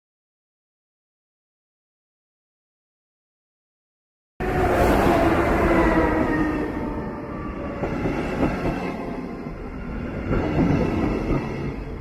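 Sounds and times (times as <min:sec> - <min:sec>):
electric train whine: 0:04.4 - 0:12.0.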